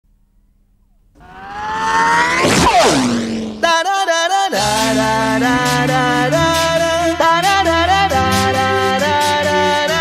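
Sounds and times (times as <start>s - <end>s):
tone rising in pitch: 1.2s - 3.8s.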